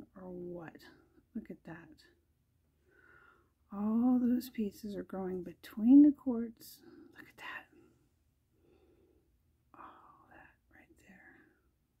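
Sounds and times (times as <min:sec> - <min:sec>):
woman whispering faintly: 0:06.7 - 0:07.9, 0:09.7 - 0:11.6.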